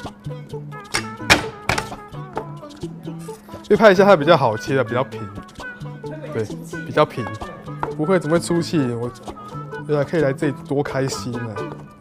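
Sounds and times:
background music: 0:00.0 - 0:12.0
cleaver knocking on wooden board: 0:01.0 - 0:02.0.

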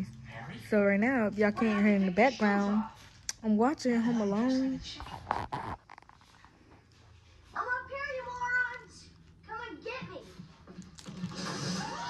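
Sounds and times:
faint television sound: 0:00.0 - 0:12.0.

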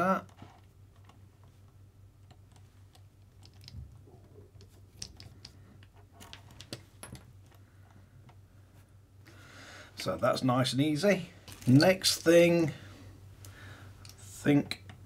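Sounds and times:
low steady hum: 0:00.0 - 0:15.0
small metal parts clicking: 0:03.3 - 0:03.8.

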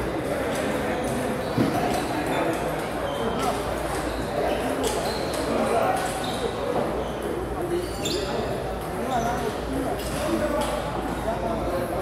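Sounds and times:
murmur of distant voices: 0:00.0 - 0:12.0.

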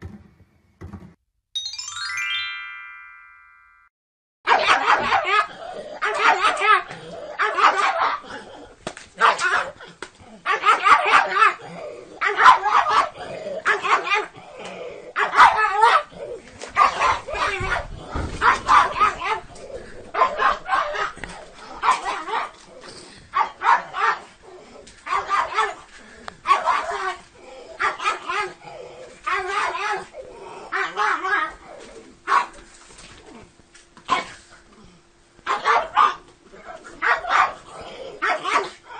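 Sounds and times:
small dog barking: 0:04.5 - 0:08.2, 0:09.2 - 0:09.8, 0:10.5 - 0:11.6, 0:12.2 - 0:14.3, 0:15.2 - 0:16.1, 0:16.8 - 0:19.4, 0:20.1 - 0:22.6, 0:23.3 - 0:24.3, 0:25.0 - 0:25.8, 0:26.5 - 0:27.2, 0:27.8 - 0:28.6, 0:29.3 - 0:30.1, 0:30.7 - 0:31.6, 0:32.2 - 0:32.6, 0:35.4 - 0:38.8.

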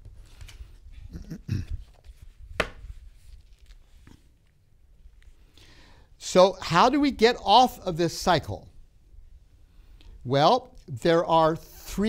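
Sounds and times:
low grunt: 0:01.1 - 0:01.8
paper shuffling: 0:01.6 - 0:04.6.

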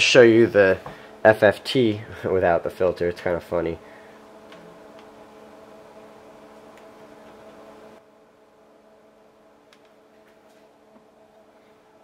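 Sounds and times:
low steady equipment hum: 0:00.0 - 0:12.0.

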